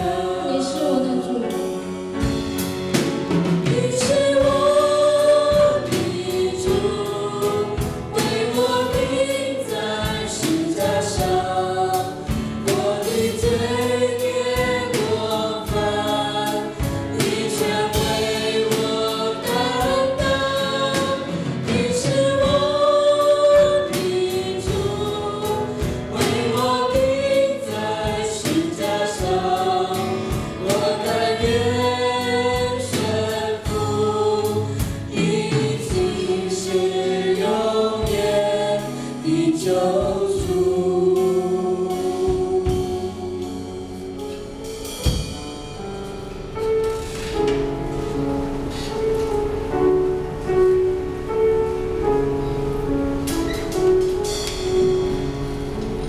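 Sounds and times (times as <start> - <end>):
men and women singing: 0.0 - 2.0, 3.4 - 44.7
acoustic guitar: 0.0 - 56.0
drum kit: 0.0 - 56.0
piano: 0.0 - 56.0.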